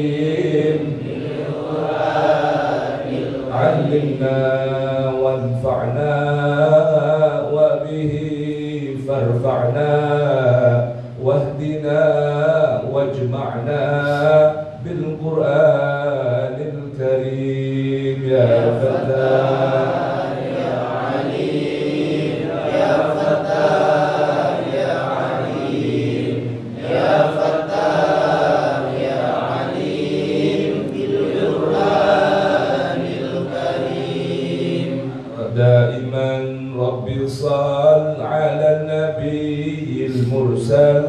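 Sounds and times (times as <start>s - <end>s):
men chanting a prayer: 0.0s - 41.0s.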